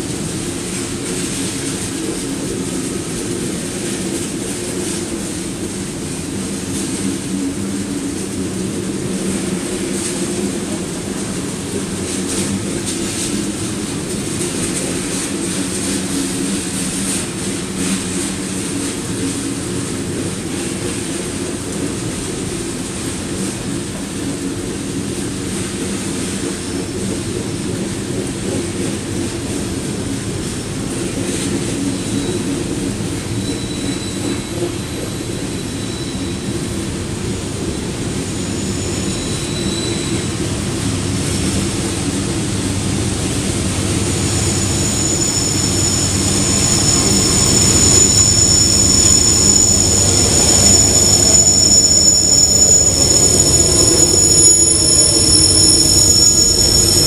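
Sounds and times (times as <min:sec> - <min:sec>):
steel wheels rumbling on rail: 0:00.0 - 0:57.0.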